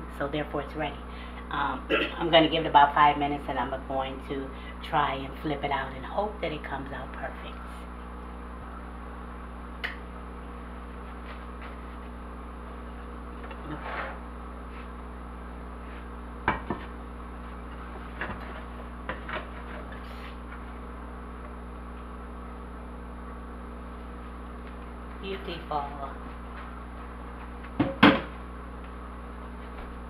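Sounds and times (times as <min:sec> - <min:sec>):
steady background hum: 0:00.0 - 0:30.0.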